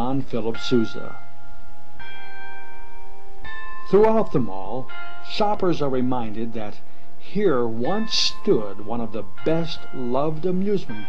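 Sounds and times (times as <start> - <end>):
clock chimes ringing: 0.0 - 6.3.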